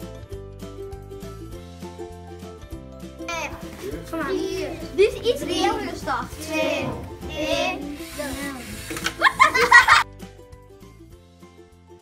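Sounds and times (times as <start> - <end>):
background music: 0.0 - 12.0
children counting down aloud: 3.3 - 8.8.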